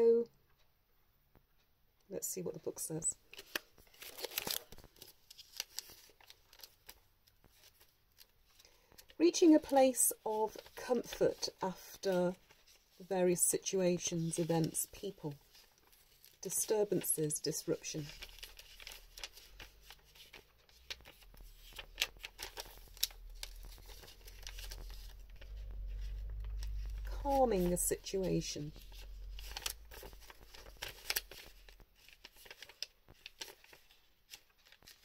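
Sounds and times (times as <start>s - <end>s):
paper handling noises: 3.3s - 35.0s
paper pages rustling: 3.3s - 35.0s.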